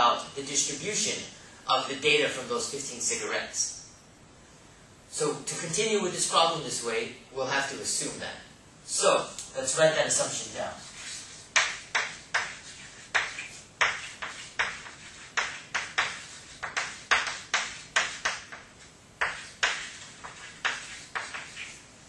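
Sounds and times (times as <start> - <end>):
chalk writing on a blackboard: 10.7 - 21.9.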